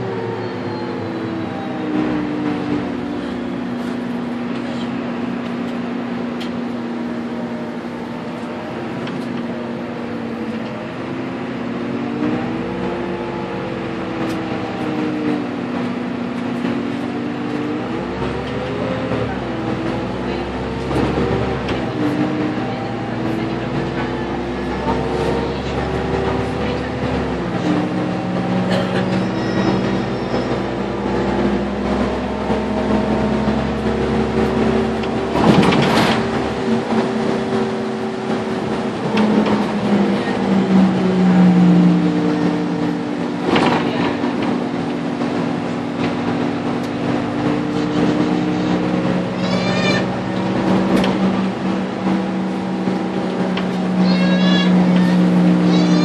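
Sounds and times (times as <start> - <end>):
bus engine and drivetrain: 0.0 - 56.0.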